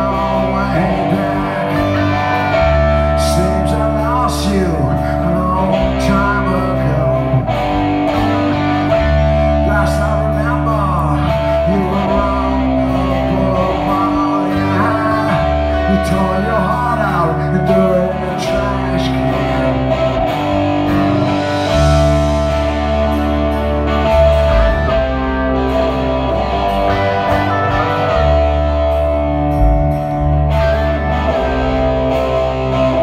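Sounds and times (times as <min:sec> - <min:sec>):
man singing into microphone: 0:00.0 - 0:07.7, 0:09.4 - 0:20.1
punk rock band playing: 0:00.0 - 0:33.0.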